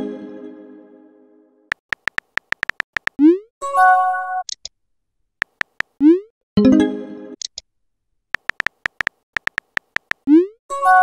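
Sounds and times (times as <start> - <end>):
virtual keyboard tap clicks: 1.7 - 3.2, 5.4 - 6.0, 8.4 - 10.2.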